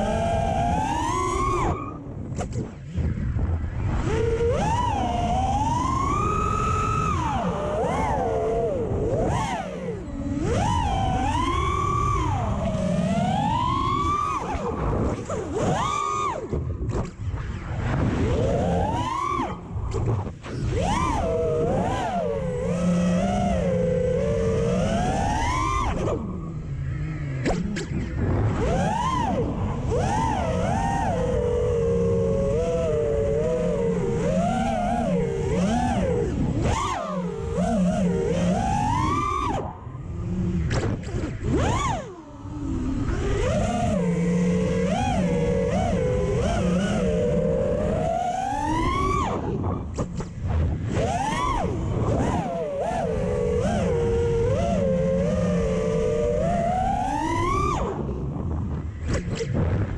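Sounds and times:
drone motors whining: 0:00.0 - 0:59.9
wind noise: 0:00.0 - 0:59.9.

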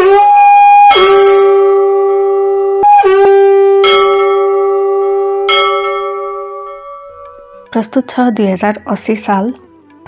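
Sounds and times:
held horn-like tone: 0:00.0 - 0:07.8
bell ringing: 0:03.8 - 0:07.8.

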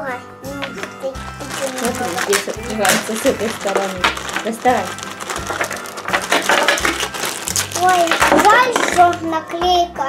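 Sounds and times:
plastic bag crinkling: 0:00.8 - 0:09.2.

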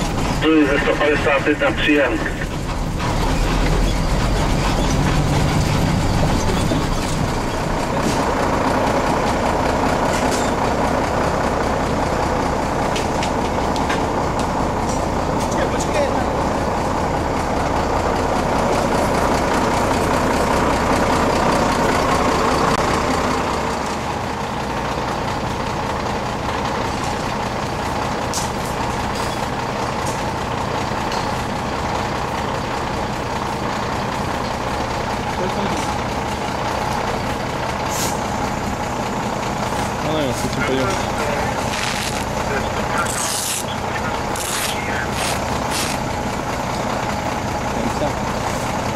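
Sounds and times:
diesel engine idling: 0:00.0 - 0:48.9
faint voices: 0:40.0 - 0:46.0.

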